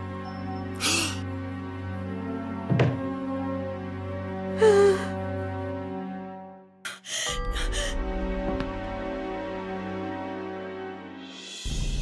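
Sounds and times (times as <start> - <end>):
background music: 0.0 - 12.0
woman gasping: 0.8 - 1.2, 4.6 - 5.2, 6.9 - 8.0.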